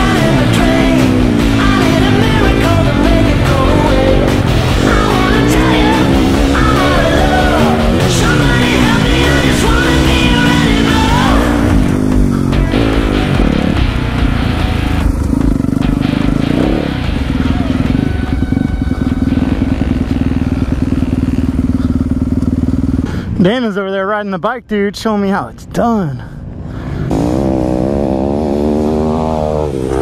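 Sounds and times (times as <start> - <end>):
dirt bike engine revving: 0.0 - 23.4, 26.5 - 30.0
rock music: 0.0 - 25.2.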